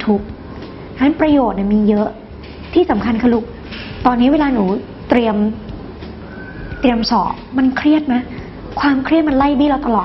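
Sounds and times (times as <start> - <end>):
woman speaking: 0.0 - 0.3, 1.0 - 5.7, 6.8 - 10.0.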